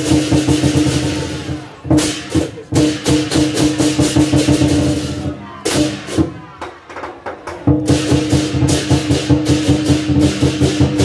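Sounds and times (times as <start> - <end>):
cymbals: 0.0 - 6.9, 7.6 - 11.0
drum beating quick strokes: 0.0 - 11.0.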